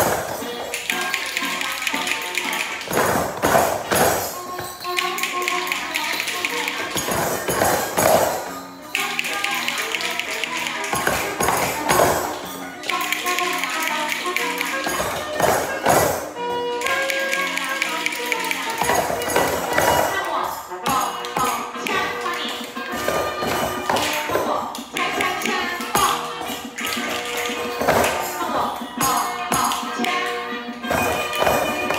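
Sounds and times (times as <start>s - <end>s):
hand drums tapping: 0.0s - 20.3s, 23.0s - 28.4s, 30.8s - 31.9s
music playing: 0.0s - 31.9s
small bells shaking: 0.0s - 31.9s.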